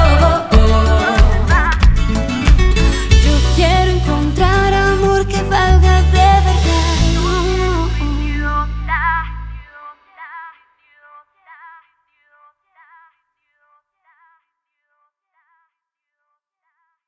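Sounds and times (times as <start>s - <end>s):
echoing sung phrase: 0.0s - 1.7s
pop song with female vocal: 0.0s - 14.4s.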